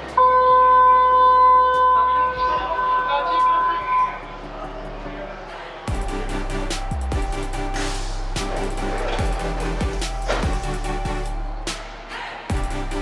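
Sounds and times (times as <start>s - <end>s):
platform noise: 0.0s - 5.0s
station departure signal tone: 0.2s - 4.3s.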